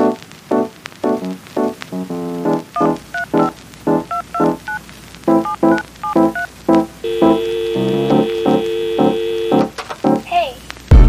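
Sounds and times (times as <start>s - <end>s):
two-tone electronic beeps: 2.8s - 3.5s
keyboard notes: 5.3s - 10.2s.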